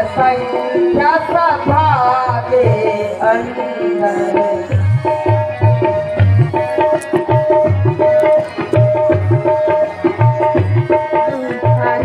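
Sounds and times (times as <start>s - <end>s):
person singing: 0.0s - 5.4s, 10.9s - 12.0s
tabla rhythm: 0.0s - 12.0s.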